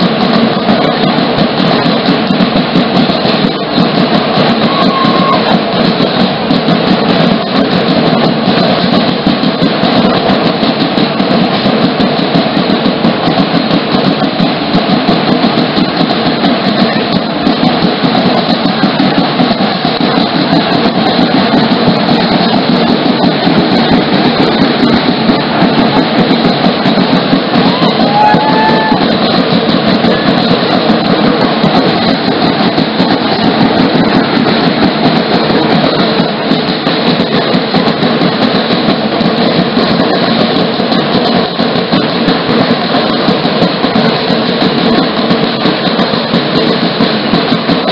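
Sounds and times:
large drums beaten in fast rhythm: 0:00.0 - 0:47.9.

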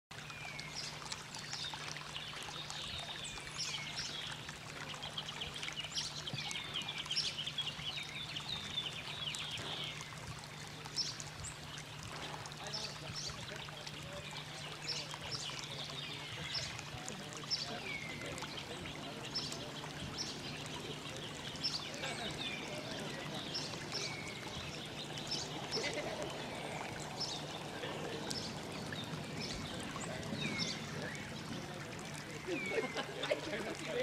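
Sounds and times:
water trickling in stone channel: 0:00.1 - 0:34.0
birds chirping and singing: 0:00.3 - 0:33.1.

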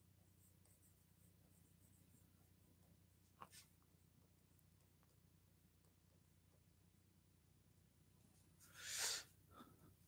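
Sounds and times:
stylus scratching on screen: 0:00.0 - 0:06.2.

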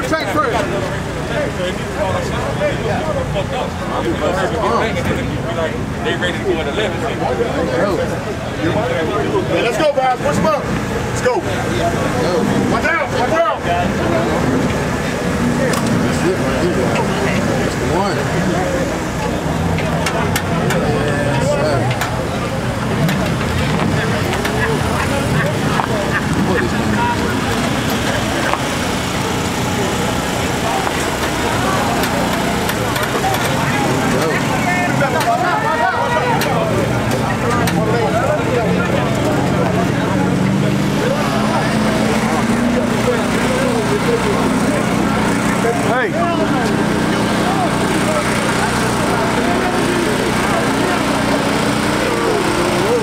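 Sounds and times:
crowd chatter: 0:00.0 - 0:53.0
drag car engine idling: 0:00.0 - 0:53.0.

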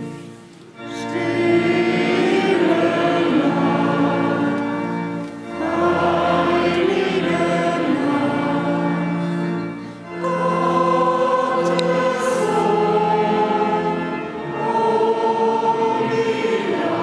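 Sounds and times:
choir singing: 0:00.0 - 0:17.0.

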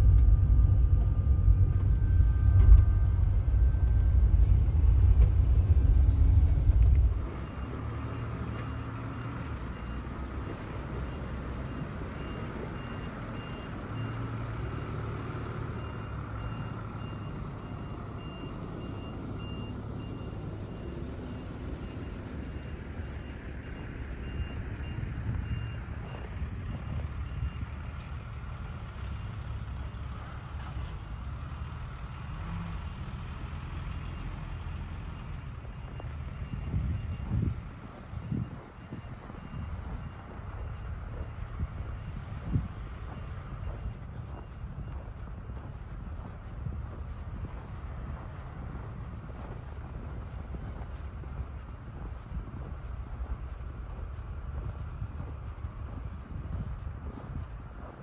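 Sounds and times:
diesel engine rumble: 0:00.0 - 0:58.0
reversing alarm beeping: 0:00.0 - 0:58.0.

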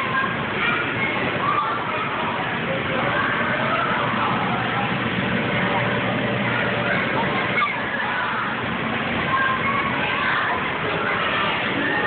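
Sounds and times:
children's voices: 0:00.0 - 0:12.0.

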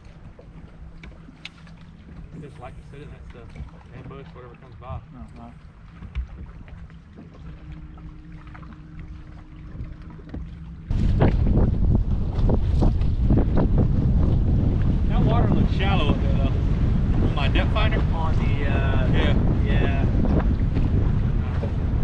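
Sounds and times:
steady hum: 0:00.0 - 0:22.0
waves on water: 0:00.0 - 0:22.0
wind buffeting microphone: 0:00.0 - 0:22.0.

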